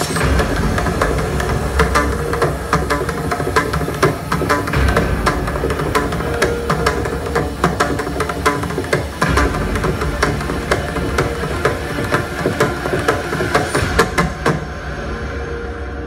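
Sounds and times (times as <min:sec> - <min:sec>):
barrel drum played with hands: 0:00.1 - 0:14.7.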